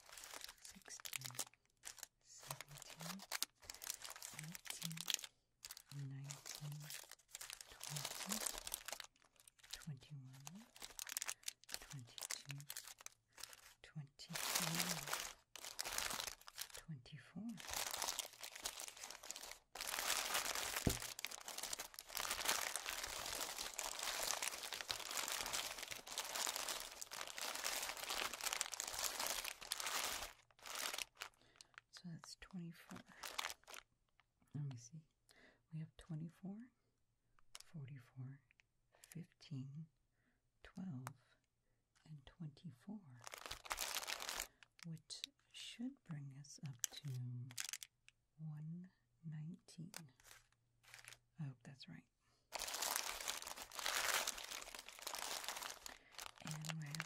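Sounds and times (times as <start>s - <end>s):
plastic wrappers crinkling: 0.0s - 16.9s, 17.5s - 31.8s, 32.9s - 33.8s, 43.2s - 44.9s, 46.7s - 47.9s, 50.1s - 51.2s, 52.5s - 57.0s.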